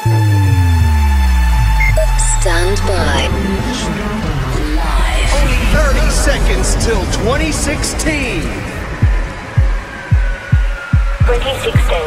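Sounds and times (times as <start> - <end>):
wavering vocal or synth: 0.0 - 8.8
deep kick drum beat: 9.0 - 12.0.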